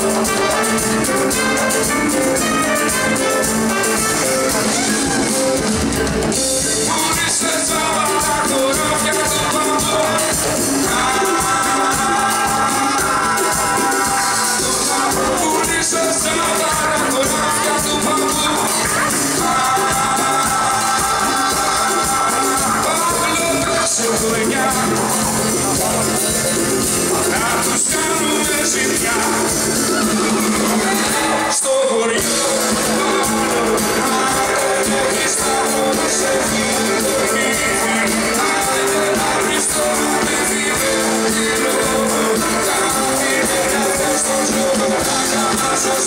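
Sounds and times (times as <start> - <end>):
trumpet melody: 0.0 - 46.0.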